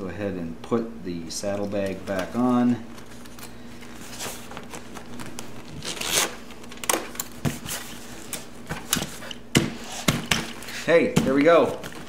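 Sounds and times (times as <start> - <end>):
leather rustling and scraping: 2.0 - 6.8.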